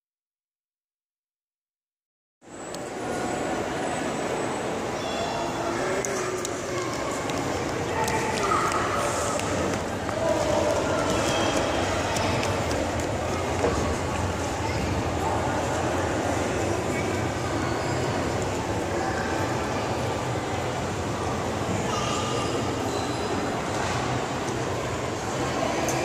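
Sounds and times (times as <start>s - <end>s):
faint indistinct chatter: 2.4s - 26.0s
indoor hall background din: 2.4s - 26.0s.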